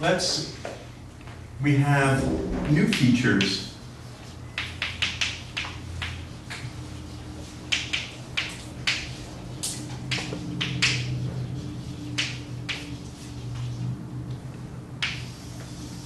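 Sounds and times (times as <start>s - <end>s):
low room hum: 0.0s - 16.0s
chalk tapping and scraping on blackboard: 2.9s - 13.9s, 15.0s - 16.0s.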